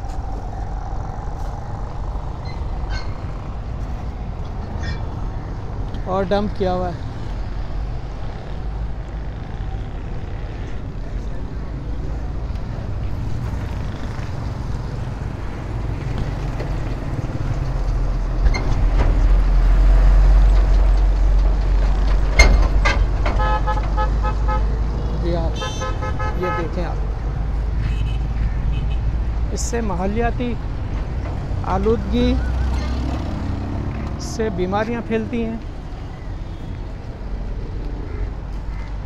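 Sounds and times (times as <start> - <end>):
road traffic rumble: 0.0 - 39.0
vehicle horn blasts: 23.4 - 24.7, 25.6 - 26.7.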